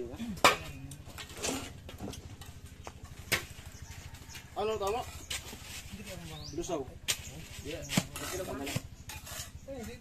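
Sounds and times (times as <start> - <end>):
trowel scraping and tapping mortar: 4.3 - 6.2, 7.0 - 10.0.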